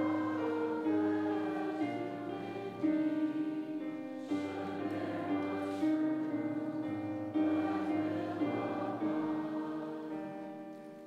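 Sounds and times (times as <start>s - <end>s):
group singing a hymn: 0.0s - 10.6s.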